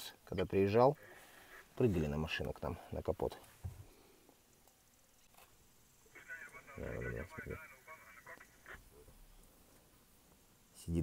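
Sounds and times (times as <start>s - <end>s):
tinny voice through speaker: 6.1s - 8.8s.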